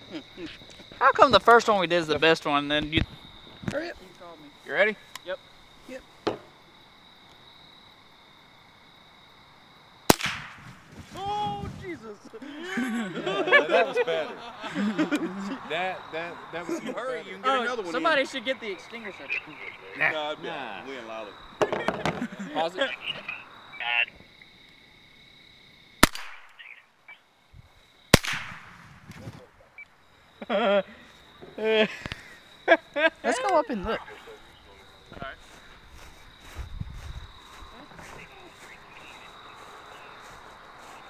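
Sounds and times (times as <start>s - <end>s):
rifle shot: 10.1s - 10.9s, 26.0s - 26.6s, 28.1s - 29.2s.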